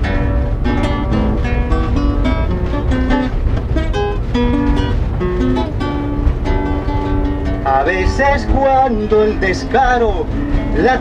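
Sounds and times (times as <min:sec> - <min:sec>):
acoustic guitar melody: 0:00.0 - 0:11.0
train carriage running rumble: 0:00.0 - 0:11.0.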